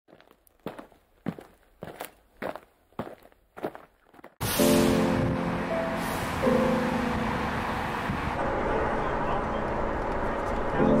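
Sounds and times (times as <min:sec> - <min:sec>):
footsteps walking: 0:00.1 - 0:04.4.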